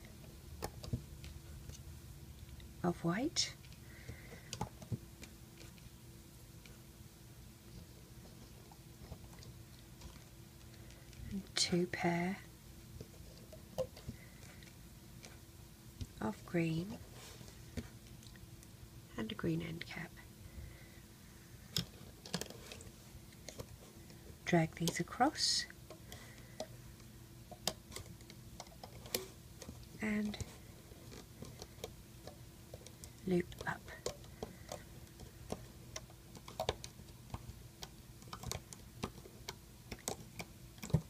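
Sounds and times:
small clicks on plastic pegs: 31.1 - 41.0.

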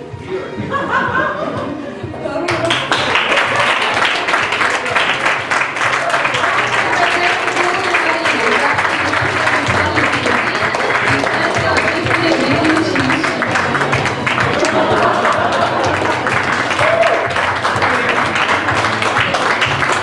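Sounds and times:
background music: 0.0 - 20.0
audience applauding: 2.5 - 20.0
voices: 6.8 - 13.4.

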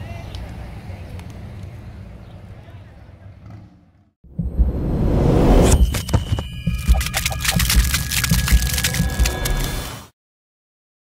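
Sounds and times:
low pulsing thuds: 4.3 - 9.6
fast sharp clicks and ticks: 5.9 - 9.8.

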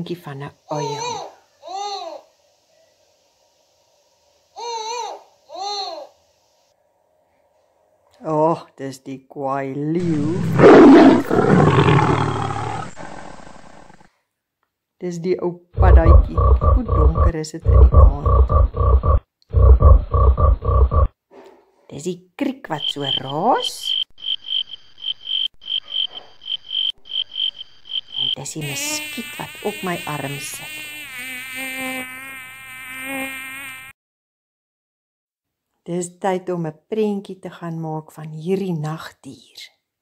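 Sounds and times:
lion roar rumble: 10.0 - 14.1
mosquito whine: 24.2 - 33.9.

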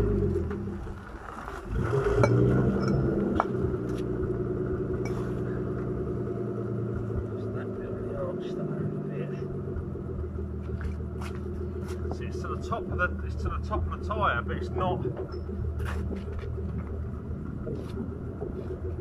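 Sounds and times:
car engine idling: 0.0 - 19.0.

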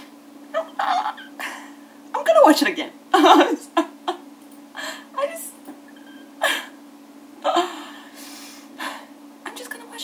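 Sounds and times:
woman breathing out heavily: 4.8 - 5.1, 7.5 - 9.2
woman gasping: 4.8 - 5.1, 7.5 - 9.2.

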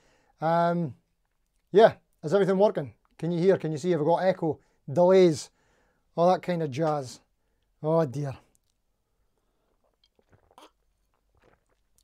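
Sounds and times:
person swallowing: 9.8 - 12.0.

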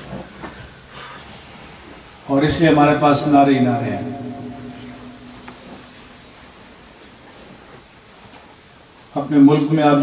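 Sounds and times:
room tone hiss: 0.0 - 10.0.

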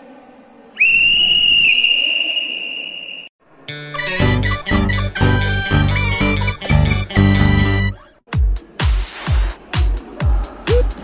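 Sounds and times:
shrill whistle blast: 0.8 - 3.3
music with strong beat: 4.0 - 11.0.

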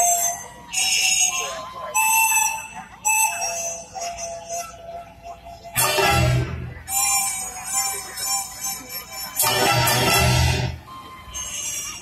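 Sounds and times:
symphony orchestra playing: 5.8 - 6.8, 9.4 - 10.8.

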